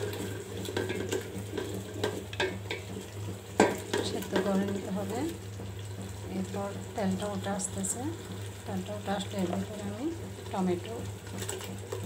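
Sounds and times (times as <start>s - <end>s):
spatula scraping a pot: 0.0s - 3.0s
paste sizzling in oil: 0.0s - 12.0s.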